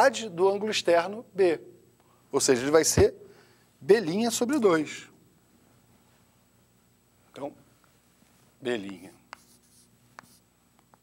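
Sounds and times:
chalk tapping on board: 8.8s - 10.4s
chalk scratching on chalkboard: 9.3s - 10.5s.

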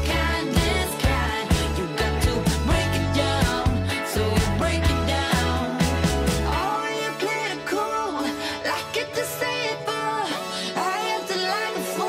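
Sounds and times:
pop song with singing: 0.0s - 12.0s.

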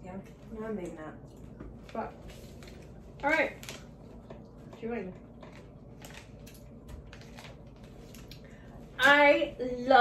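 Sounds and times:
plastic wrapper crinkling: 2.3s - 4.4s, 5.4s - 8.5s.

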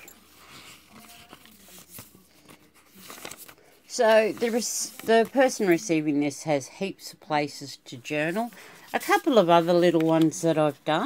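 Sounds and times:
pages turning: 0.1s - 5.7s, 8.3s - 10.5s.

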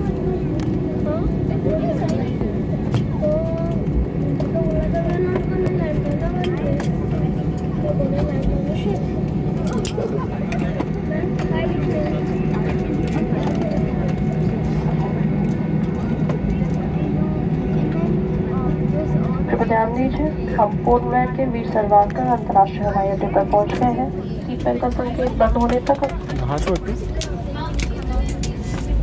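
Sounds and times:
airliner cabin drone: 0.0s - 29.0s
passenger chatter: 0.0s - 29.0s.

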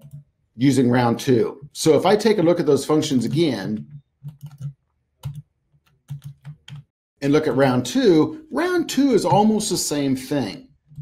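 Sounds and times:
keyboard and mouse clicking: 0.0s - 0.3s, 3.2s - 6.9s.

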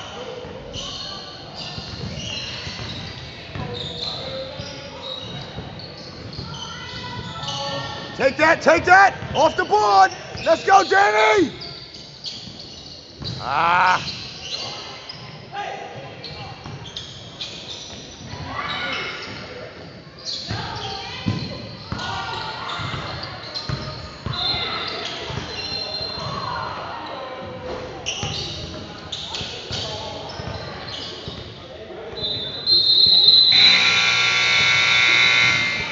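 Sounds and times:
voices echoing in hall: 0.0s - 35.9s
scoreboard buzzer: 33.5s - 35.9s.

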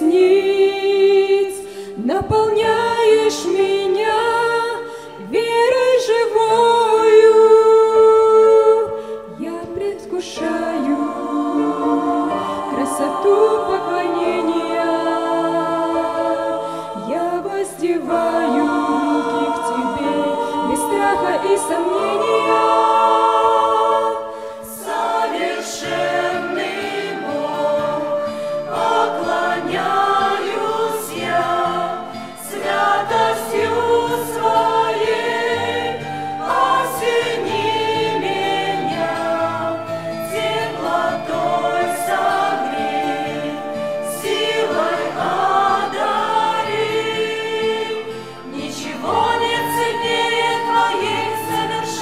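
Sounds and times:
mixed choir singing: 0.0s - 52.0s.

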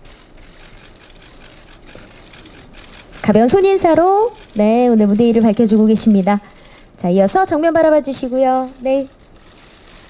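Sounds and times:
hall room noise: 0.0s - 10.0s.

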